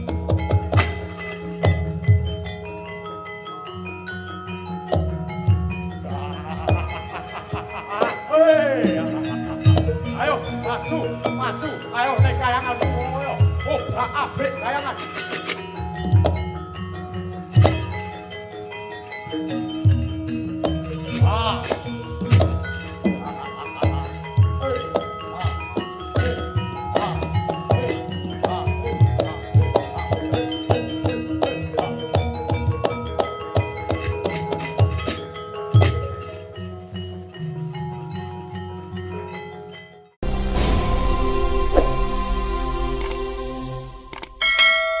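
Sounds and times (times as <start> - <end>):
ringing metallic tones: 0.0 - 45.0
bright bell chime: 0.7 - 36.6, 37.3 - 45.0
vocal cry: 6.0 - 11.9, 21.1 - 30.2
closing music: 40.2 - 44.6.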